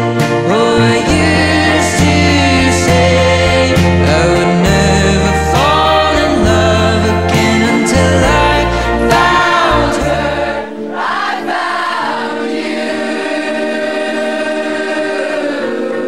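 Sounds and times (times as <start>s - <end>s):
bass line: 0.0s - 11.0s
guitar: 0.0s - 16.0s
person singing: 0.0s - 16.0s
layered voices on held chord: 0.1s - 16.0s.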